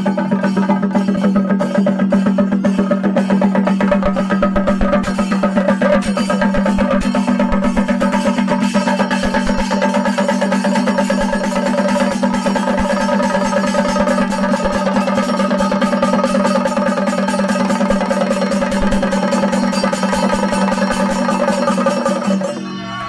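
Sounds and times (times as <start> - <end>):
drums beaten with sticks: 0.0 - 22.9
hand cymbals clashing: 0.0 - 23.0.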